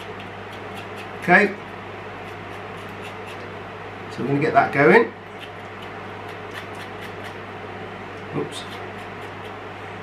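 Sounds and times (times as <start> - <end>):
spoon scraping ginger: 0.0 - 3.5, 5.3 - 7.4.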